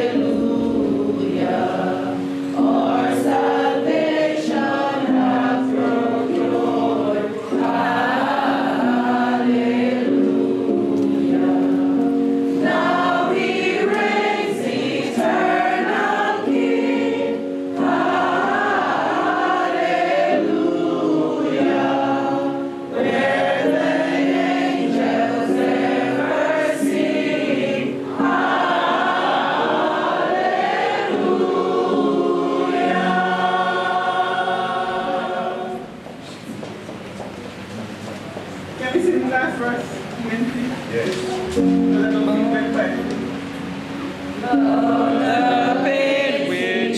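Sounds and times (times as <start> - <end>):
congregation singing: 0.0 - 36.6, 40.8 - 46.9.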